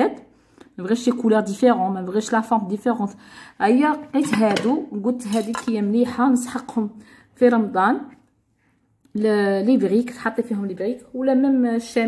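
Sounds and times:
woman talking: 0:00.0 - 0:08.2, 0:09.0 - 0:12.0
dishes clinking: 0:04.2 - 0:05.9.

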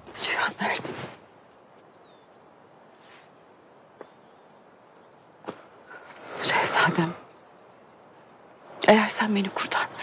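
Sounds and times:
low even hiss: 0:00.0 - 0:10.0.

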